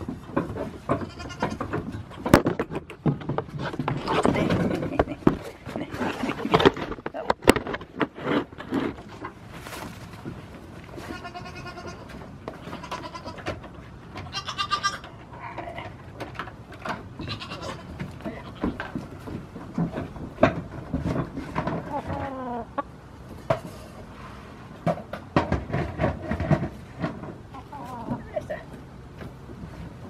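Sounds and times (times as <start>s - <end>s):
goats bleating: 1.0s - 1.7s, 11.0s - 13.4s, 14.2s - 15.7s, 17.2s - 18.8s.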